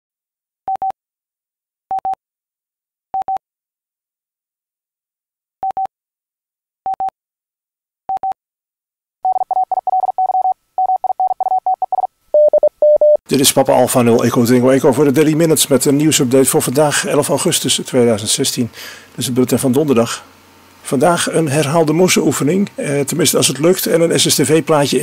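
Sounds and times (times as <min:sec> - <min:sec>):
morse code beeps: 0:05.6 - 0:05.9, 0:06.9 - 0:07.1, 0:08.1 - 0:08.4, 0:09.2 - 0:13.2.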